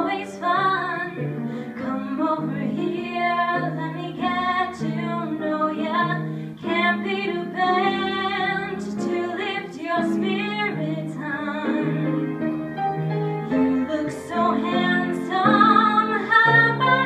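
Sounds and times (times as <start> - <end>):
woman singing: 0.0 - 12.1, 13.5 - 17.0
piano chords: 0.0 - 17.0.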